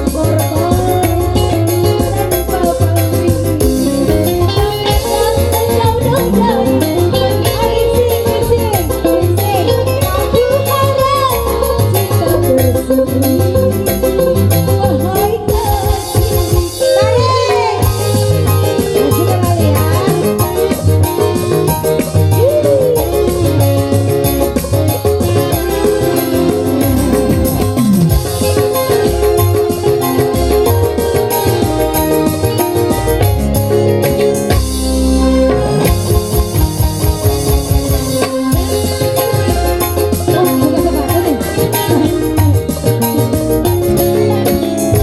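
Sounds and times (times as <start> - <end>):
electric guitar line: 0.0 - 45.0
live band music: 0.0 - 45.0
steady quick beat: 17.8 - 44.2.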